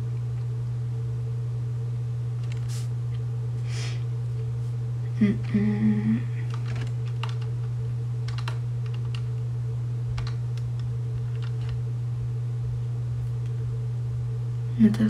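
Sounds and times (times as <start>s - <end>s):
steady low hum: 0.0s - 15.0s
person humming: 5.1s - 6.5s
calculator keys clicking: 6.5s - 7.5s, 8.3s - 9.2s, 10.2s - 10.4s, 11.3s - 11.8s.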